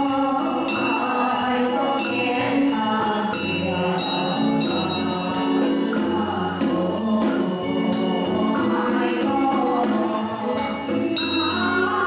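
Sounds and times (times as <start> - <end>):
accompanying instruments: 0.0 - 12.0
small percussion beat: 0.0 - 12.0
voices chanting together: 0.0 - 12.0.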